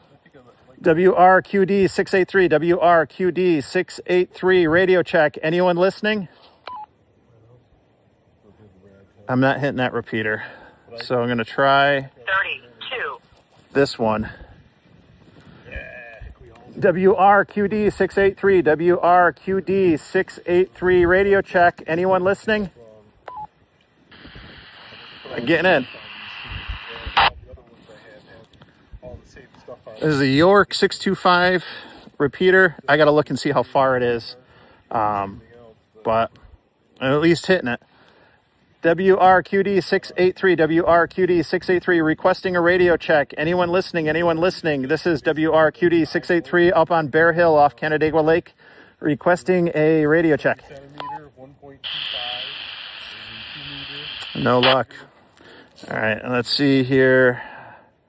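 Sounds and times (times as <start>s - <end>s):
radio carrier hiss: 8.4s - 14.7s, 23.6s - 28.8s, 51.8s - 56.7s
radio squelch burst: 12.3s - 13.3s, 23.3s - 27.4s, 51.8s - 55.0s.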